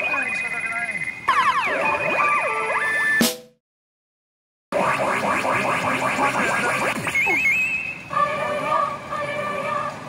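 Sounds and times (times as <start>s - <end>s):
pachinko machine jingle: 0.0s - 3.2s.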